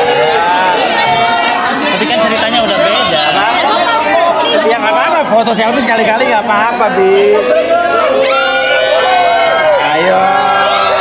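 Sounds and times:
overlapping chatter of voices: 0.0 - 11.0.

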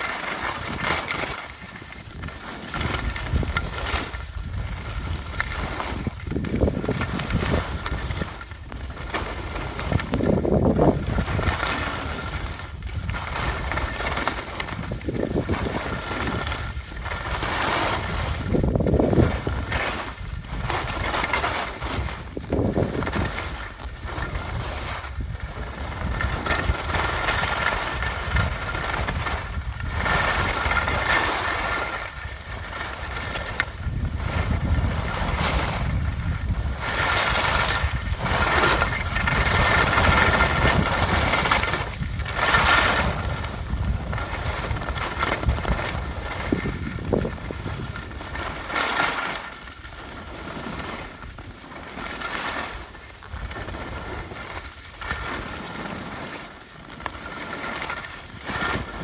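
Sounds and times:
skis scraping over snow: 0.0 - 59.0
wind on microphone: 0.0 - 59.0.

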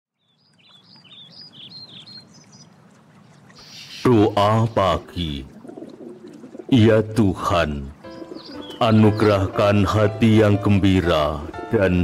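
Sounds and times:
birds chirping: 0.1 - 12.0.

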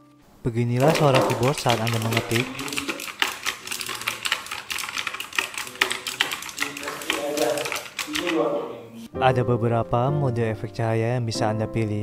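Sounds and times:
mechanical keyboard typing: 0.8 - 8.5.

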